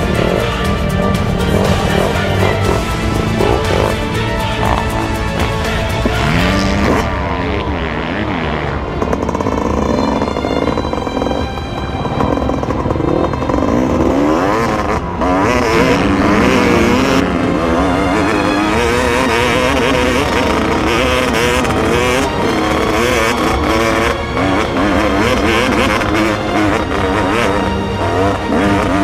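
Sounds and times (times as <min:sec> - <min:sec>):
dirt bike engine revving: 0:00.0 - 0:29.0.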